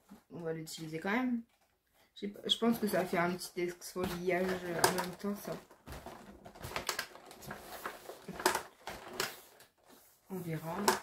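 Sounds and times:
packaging clicks and rustles: 4.1s - 10.0s.

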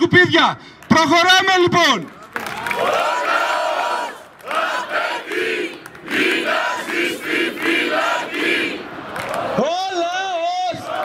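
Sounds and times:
crowd chanting: 2.6s - 9.6s.

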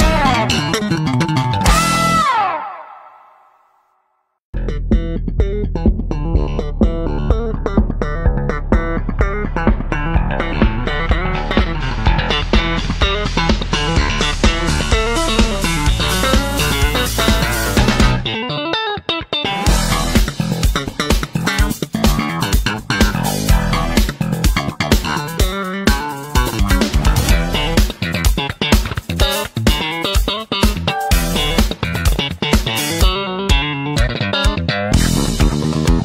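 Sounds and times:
music with steady beat: 4.6s - 18.3s, 19.6s - 36.0s
background music: 4.6s - 33.8s.

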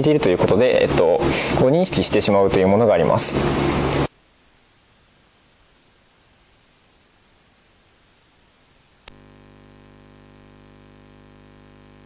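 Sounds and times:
electrical hum: 0.0s - 12.0s
faint hiss: 3.3s - 12.0s.

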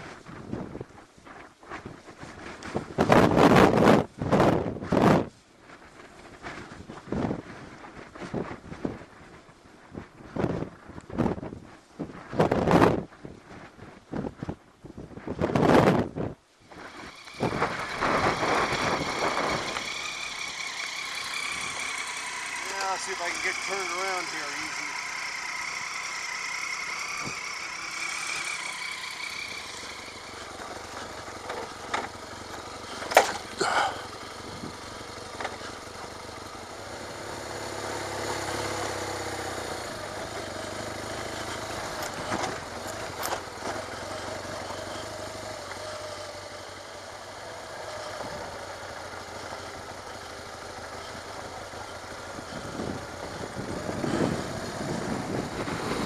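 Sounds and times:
motorcycle engine running: 0.0s - 9.4s, 15.2s - 56.0s
sharp knocks and rattles: 28.2s - 33.6s.

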